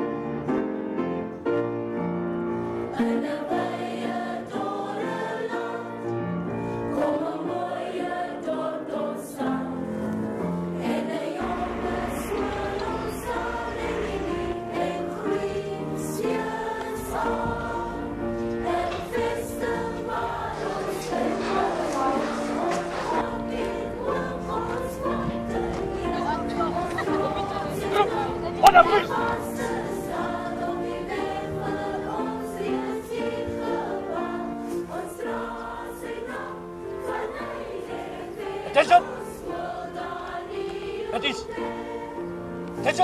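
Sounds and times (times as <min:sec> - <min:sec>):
choir singing sustained notes: 0:01.9 - 0:43.0.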